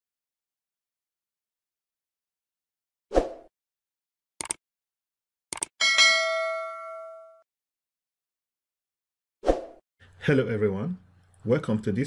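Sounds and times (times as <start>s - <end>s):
notification bell ding: 5.8s - 7.4s.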